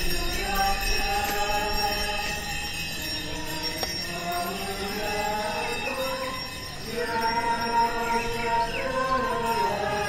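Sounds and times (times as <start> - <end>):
slow church hymn: 0.0 - 10.0.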